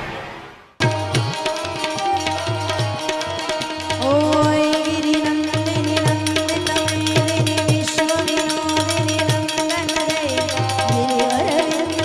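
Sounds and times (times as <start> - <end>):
harmonium: 0.8 - 12.0
woman singing: 3.7 - 12.0.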